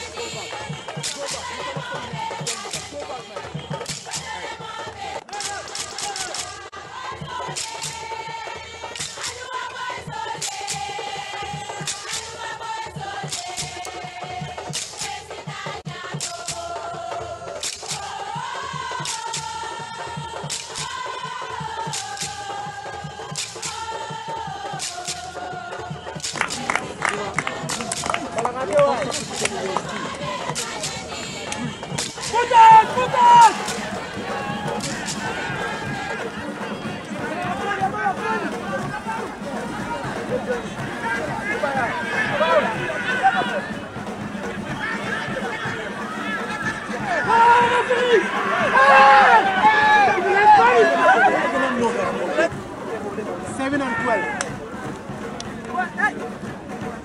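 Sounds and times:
people talking and calling out: 0.0s - 57.0s.

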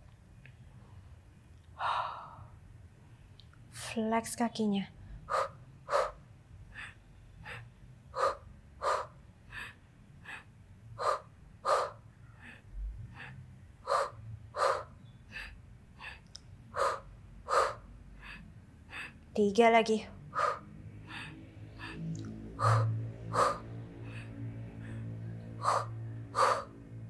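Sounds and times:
woman breathing sharply: 1.8s - 2.6s, 5.0s - 19.2s, 20.3s - 27.0s.

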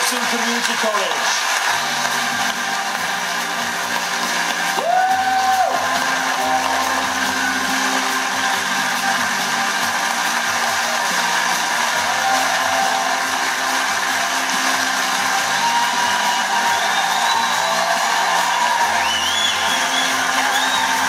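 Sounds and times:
audience applause through speaker: 0.0s - 21.0s.

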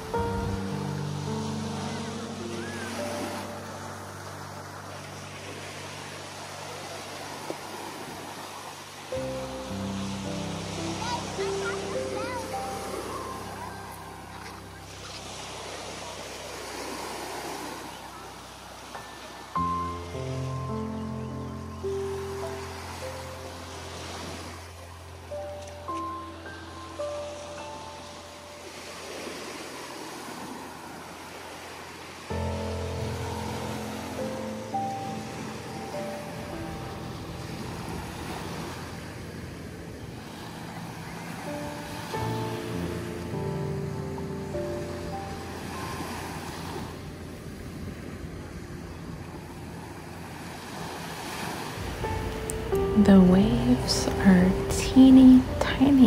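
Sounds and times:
small waves breaking on sand: 0.0s - 20.6s, 22.0s - 56.0s
background music of held notes: 0.0s - 30.9s, 32.2s - 56.0s.

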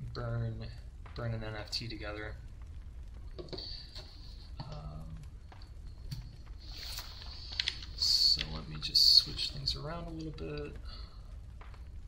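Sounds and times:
computer keyboard typing: 7.5s - 8.6s.

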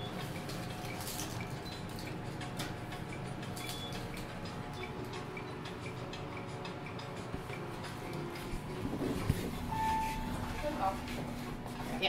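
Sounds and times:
steady light ticking: 0.0s - 8.7s.

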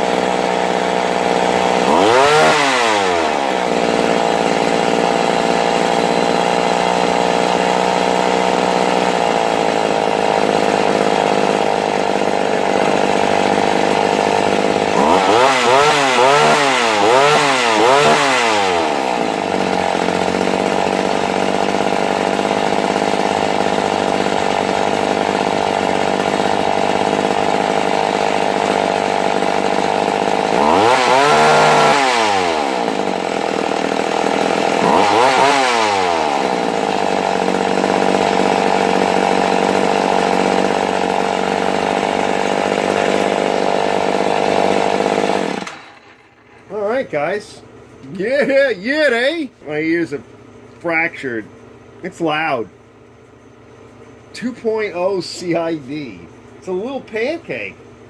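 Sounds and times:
chainsaw engine revving and idling: 0.0s - 52.8s, 53.6s - 58.0s.

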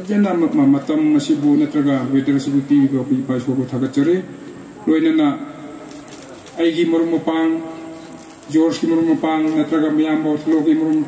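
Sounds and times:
man speaking into a microphone: 0.0s - 5.8s, 6.5s - 11.0s.

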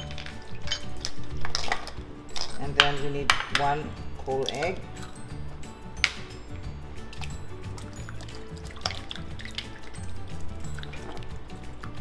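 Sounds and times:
background music: 0.0s - 12.0s
spatula stirring liquid: 7.0s - 12.0s.

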